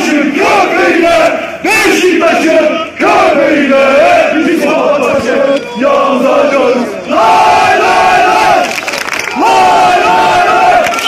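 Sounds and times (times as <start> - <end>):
crowd chanting and shouting: 0.0 - 11.0.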